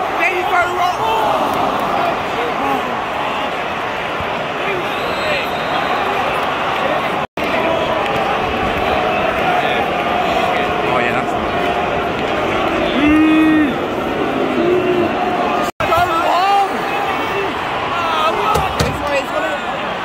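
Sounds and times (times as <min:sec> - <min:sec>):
stadium crowd noise: 0:00.0 - 0:20.0.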